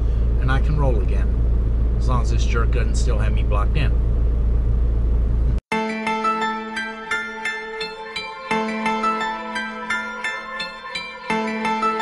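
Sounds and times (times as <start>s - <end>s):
diesel truck engine idling: 0.0s - 5.6s.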